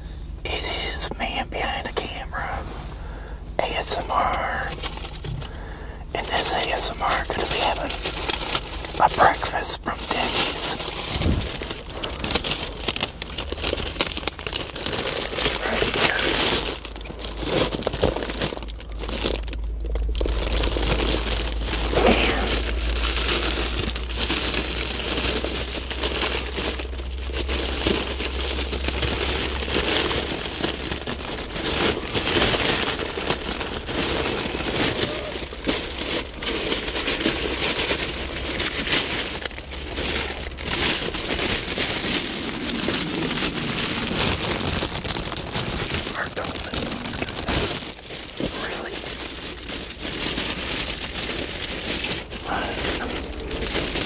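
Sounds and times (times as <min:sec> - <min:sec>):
low steady hum: 0:00.0 - 0:54.0
plastic bag and paper crinkling: 0:03.6 - 0:54.0.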